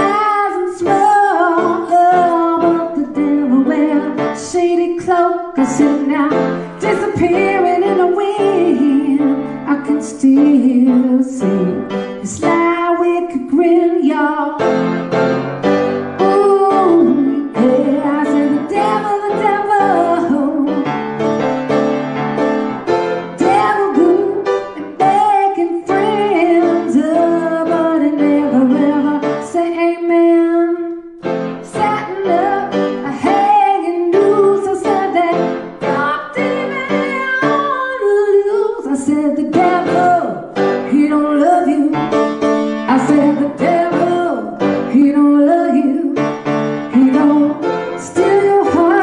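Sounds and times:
woman singing: 0.0s - 14.8s, 16.2s - 20.9s, 23.4s - 42.2s, 42.9s - 49.0s
grand piano: 0.0s - 49.0s.

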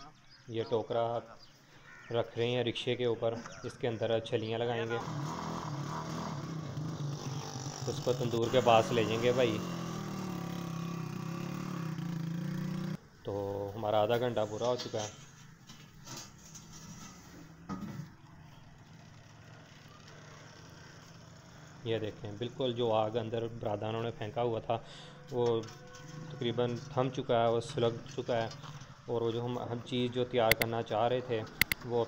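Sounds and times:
outdoor background noise: 0.0s - 32.0s
small engine idling: 18.6s - 21.8s.

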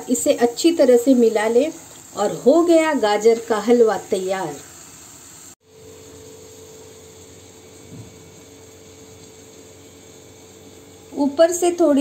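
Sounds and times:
faint even hiss: 0.0s - 12.0s
machine hum with held tone: 4.4s - 12.0s.

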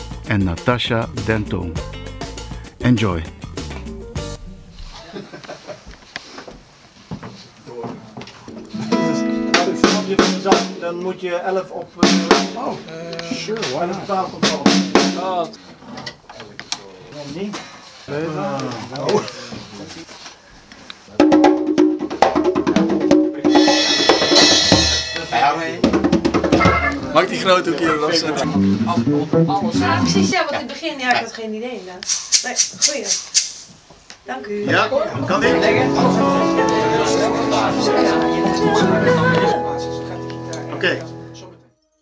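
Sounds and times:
band playing: 0.0s - 4.8s, 8.7s - 10.8s, 12.0s - 12.7s, 22.8s - 27.2s, 28.3s - 30.4s, 35.2s - 41.7s
drum kit hits: 8.9s - 10.9s, 12.0s - 12.8s, 14.4s - 15.3s, 21.2s - 26.9s
indistinct talk: 34.3s - 41.6s
voices: 34.4s - 41.2s.

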